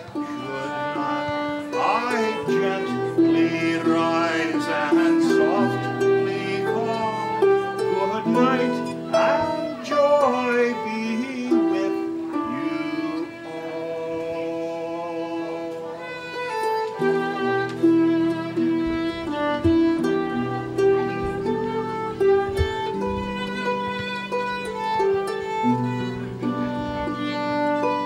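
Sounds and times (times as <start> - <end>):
man singing: 0.0 - 16.1
bowed fiddle: 0.0 - 28.0
plucked harp: 0.0 - 28.0.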